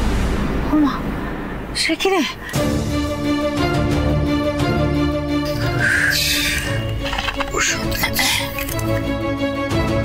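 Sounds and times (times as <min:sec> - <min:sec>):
dramatic music with held tones: 0:00.0 - 0:10.0.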